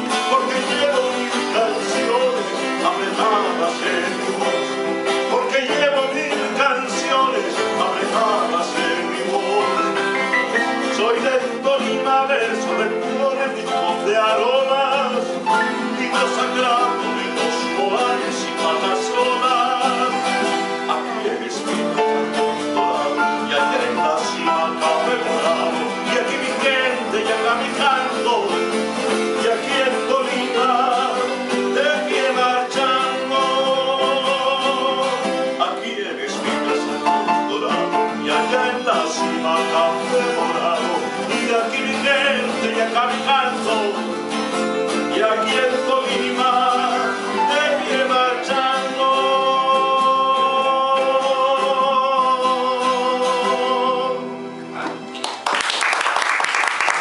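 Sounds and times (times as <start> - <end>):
man singing: 0.0 - 55.1
strummed acoustic guitar: 0.0 - 55.4.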